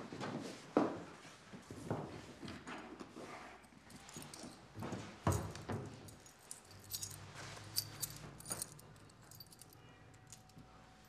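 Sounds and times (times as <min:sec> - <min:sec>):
keys jingling: 0:03.9 - 0:04.7, 0:05.3 - 0:10.6.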